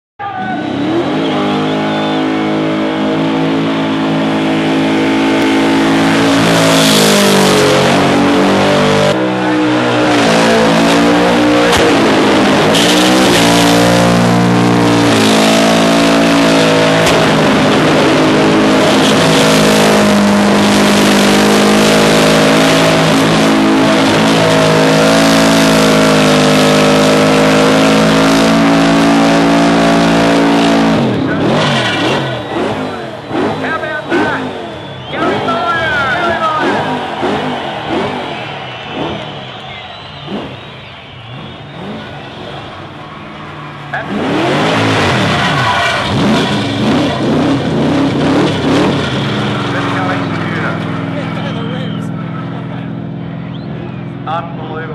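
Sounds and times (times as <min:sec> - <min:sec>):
car engine revving high: 0:00.2 - 0:54.9
tyres squealing: 0:21.6 - 0:47.4.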